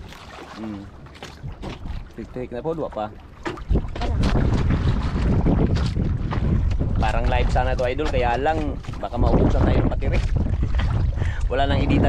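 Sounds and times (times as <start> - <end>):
open sea choppy water: 0.0 - 12.0
wind buffeting microphone: 0.0 - 12.0.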